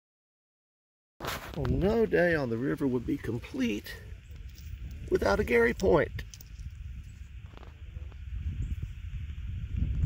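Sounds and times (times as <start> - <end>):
low uneven rumbling on microphone: 1.4 - 10.0.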